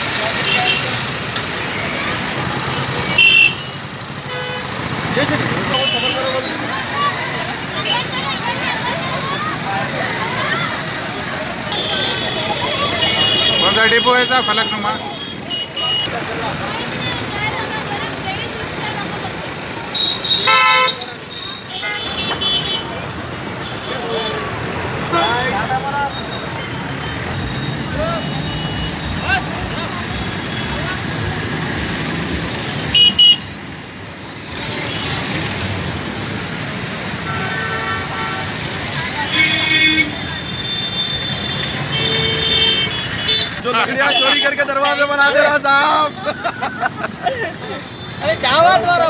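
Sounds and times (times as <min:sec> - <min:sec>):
motorcycles passing: 0:00.0 - 0:49.0
road traffic: 0:00.0 - 0:49.0
vehicle horns tooting: 0:00.3 - 0:06.8, 0:11.5 - 0:31.2, 0:32.7 - 0:33.6, 0:37.1 - 0:46.4, 0:47.5 - 0:49.0.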